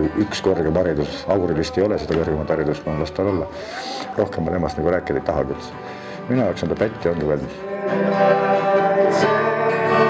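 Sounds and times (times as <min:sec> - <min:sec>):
man talking: 0:00.0 - 0:07.6
acoustic guitar notes: 0:00.0 - 0:10.0.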